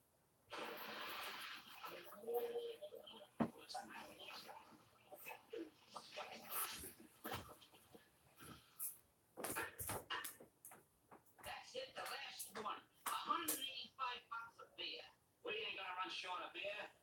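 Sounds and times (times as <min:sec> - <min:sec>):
indistinct television voices: 0:00.6 - 0:10.5, 0:11.4 - 0:17.0.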